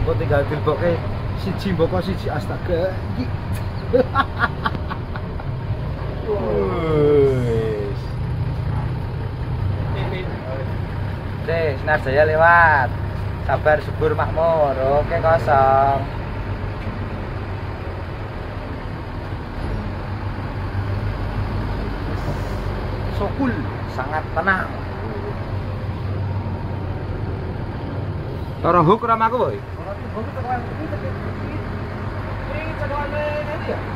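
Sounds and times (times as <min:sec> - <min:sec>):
diesel engine droning: 0:00.0 - 0:33.9
road and cabin noise: 0:00.0 - 0:33.9.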